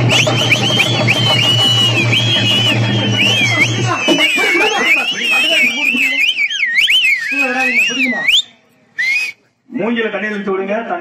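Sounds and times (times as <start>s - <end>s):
voices: 0.0s - 10.5s.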